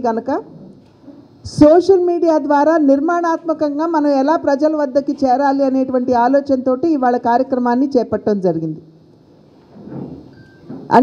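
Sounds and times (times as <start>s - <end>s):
woman speaking into microphone: 0.0s - 0.5s, 1.4s - 8.8s.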